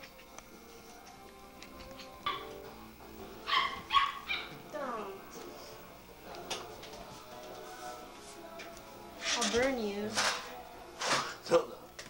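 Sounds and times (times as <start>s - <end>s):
small dog yipping: 3.5s - 4.6s.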